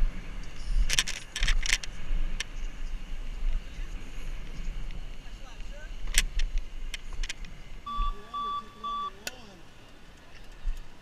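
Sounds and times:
wind noise: 0.0 - 8.6
bike rolling on pavement: 0.0 - 11.0
short electronic beeps: 7.9 - 9.2.

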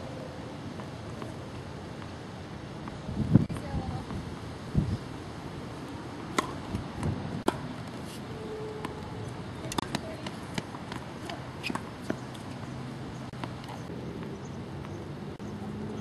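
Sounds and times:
tennis ball hits and bounces: 6.3 - 15.0.

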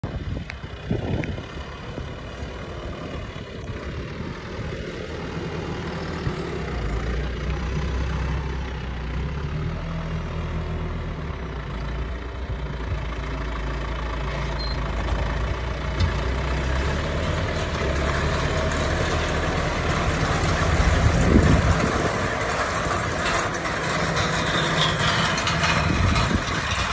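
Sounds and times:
tractor diesel engine running: 0.0 - 26.9.

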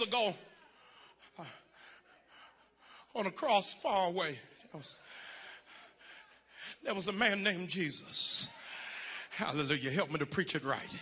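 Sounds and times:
faint breathing: 0.6 - 3.2, 5.0 - 6.8, 8.5 - 9.4.

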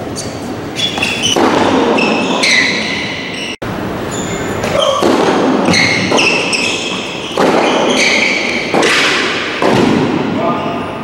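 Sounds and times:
tennis ball racket hits: 7.3 - 10.2.

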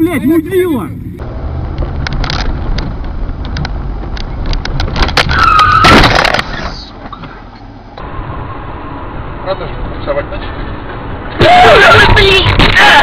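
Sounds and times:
car engine and road noise: 0.0 - 13.0.

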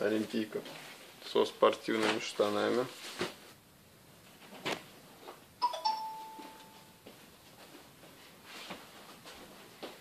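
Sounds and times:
two-note chime: 5.6 - 7.0.

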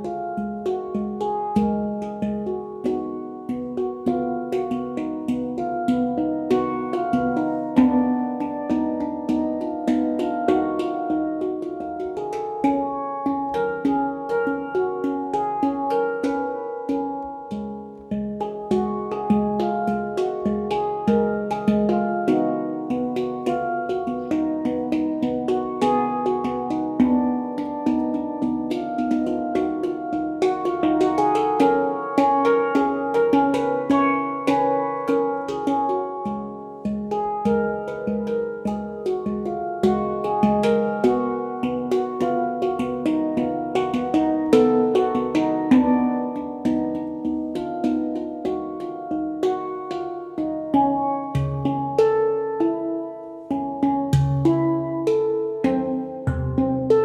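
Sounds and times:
handpan ringing notes: 0.0 - 57.0.

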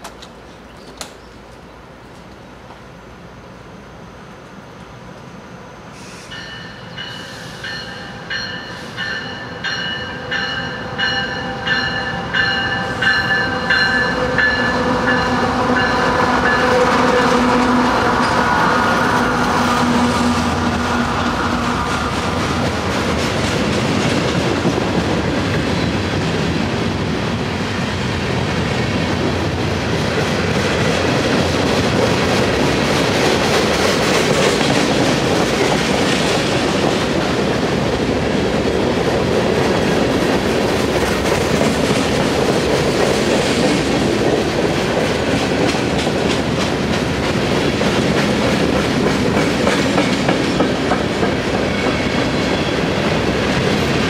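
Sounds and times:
diesel locomotive engine: 0.0 - 54.0
train wheels clattering: 6.3 - 26.8, 28.3 - 54.0
bell ringing: 6.4 - 16.6.

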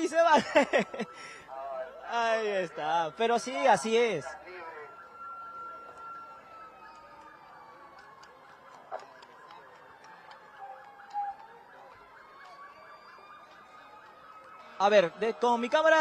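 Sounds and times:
distant siren wailing: 0.0 - 16.0
faint street noise: 0.0 - 16.0.

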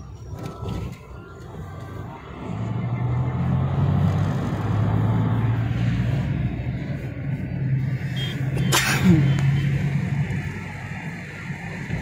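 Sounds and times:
car engine and tyre drone: 0.0 - 12.0.

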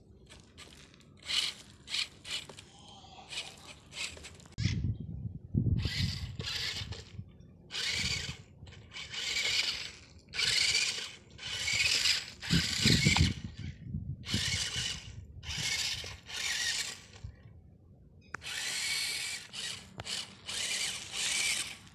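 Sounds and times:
small electric motor whirring: 0.2 - 2.6, 3.3 - 4.8, 5.8 - 17.4, 18.4 - 21.9.

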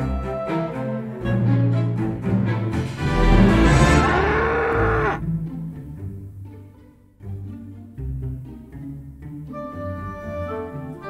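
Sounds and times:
low string music: 0.0 - 11.0
cow mooing: 3.6 - 5.2.

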